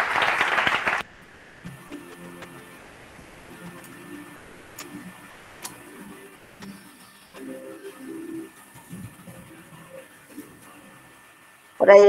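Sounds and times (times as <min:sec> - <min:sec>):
audience clapping: 0:00.0 - 0:01.1.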